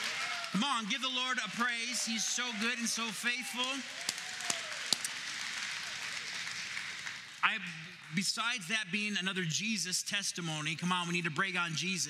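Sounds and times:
crowd applause: 0.0 - 8.3
sharp claps close to microphone: 3.6 - 8.2.

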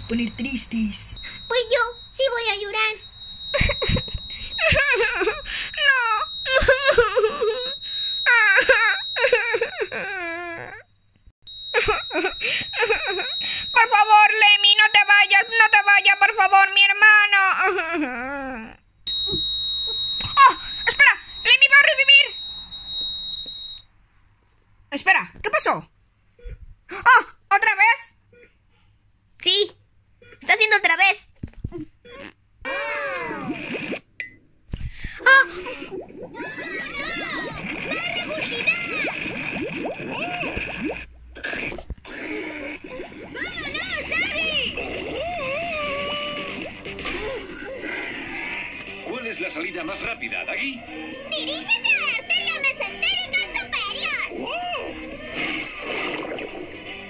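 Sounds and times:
high-pitched wavering vocal cry: 3.5 - 10.9, 32.1 - 33.8, 35.3 - 48.8
child wailing and sobbing: 4.6 - 10.9, 32.7 - 33.6, 35.4 - 39.1, 42.2 - 46.5
thin high-pitched tone: 35.6 - 41.0.

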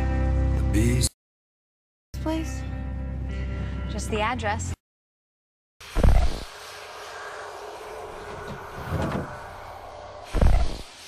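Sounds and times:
dark rumbling drone: 5.8 - 11.0.

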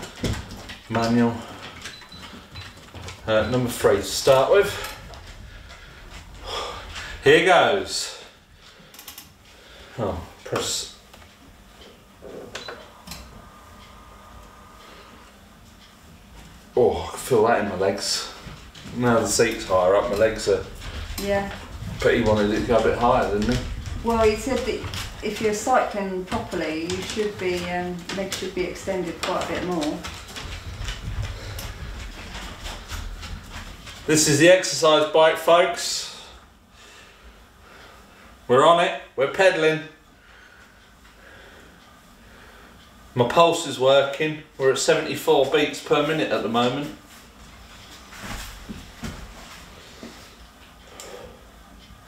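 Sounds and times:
exercise bike clicking: 0.0 - 10.9, 12.6 - 35.2.

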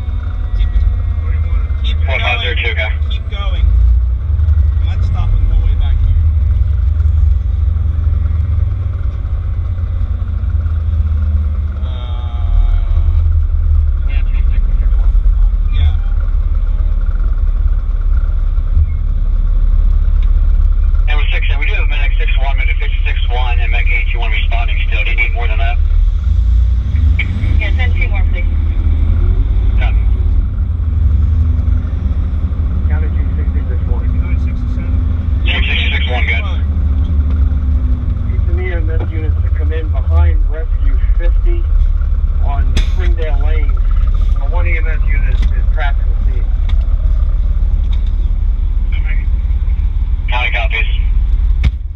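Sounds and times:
indistinct voices: 0.0 - 3.8, 11.7 - 17.0, 20.8 - 25.8, 26.9 - 30.6, 32.7 - 48.2, 48.8 - 51.3
diesel engine rumbling: 0.0 - 51.9.

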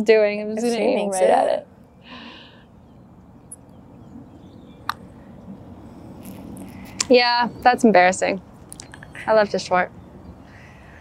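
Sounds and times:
quiet outdoor background: 0.0 - 11.0.

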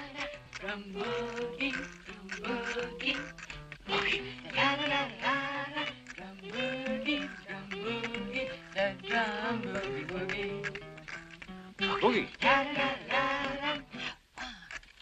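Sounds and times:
person singing quietly: 0.0 - 11.1, 11.8 - 14.8
tapping on a matchbox: 0.0 - 15.0.

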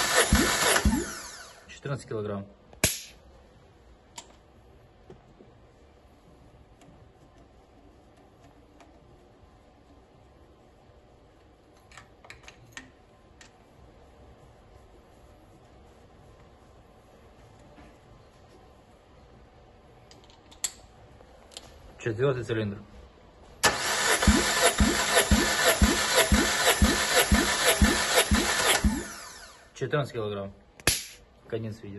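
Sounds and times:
engine cranking on starter: 0.0 - 1.5, 23.6 - 29.6.

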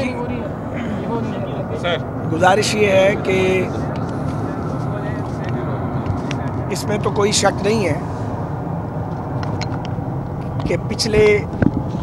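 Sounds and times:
faint voices: 0.0 - 8.2.

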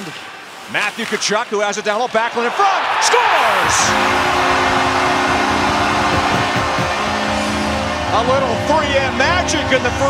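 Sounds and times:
crowd cheering loudly: 2.3 - 8.1
arena goal horn chord: 3.6 - 10.0.

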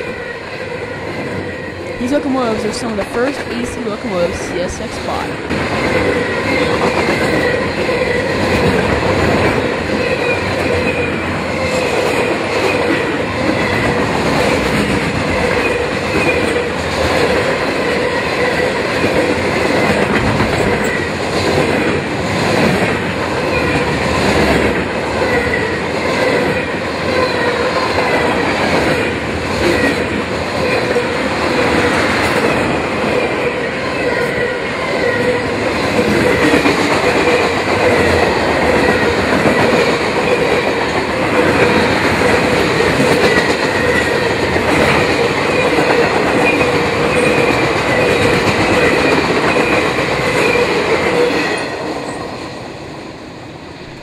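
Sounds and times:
freight train rumbling and rattling: 0.0 - 54.0.

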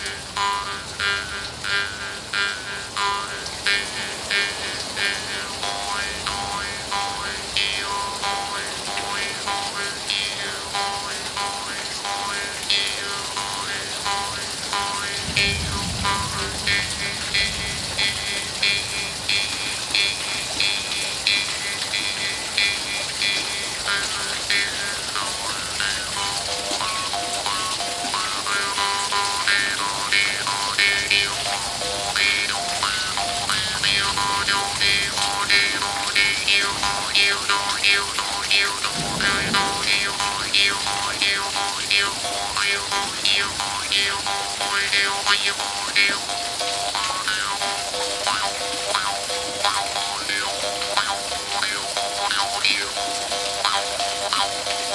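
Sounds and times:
steady rain hiss: 0.0 - 54.9.

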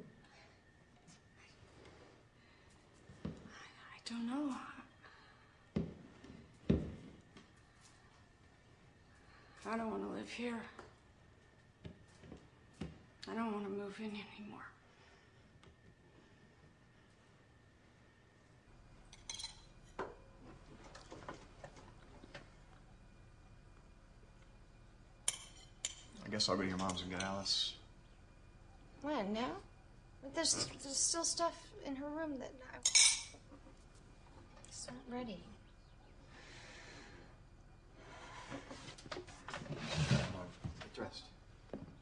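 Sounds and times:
breathy intake of breath: 36.3 - 37.4.

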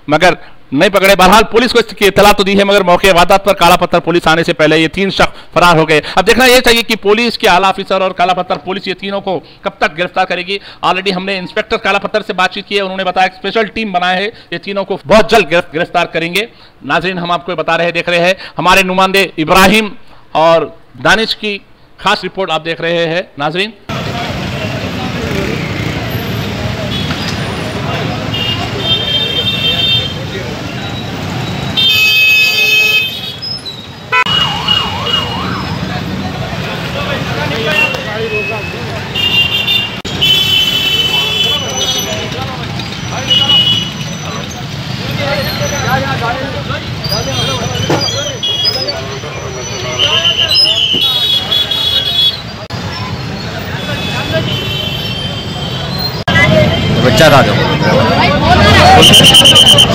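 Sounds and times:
motorbike and car traffic: 23.9 - 59.9
street crowd voices: 23.9 - 59.9
vehicle horns: 24.5 - 35.6, 37.5 - 42.4, 43.0 - 45.9, 47.0 - 58.0, 58.6 - 59.9
warbling siren-like tone: 34.3 - 35.8
people talking: 35.9 - 39.0, 41.2 - 51.4, 56.3 - 59.9
shrill high tone: 57.6 - 59.9.

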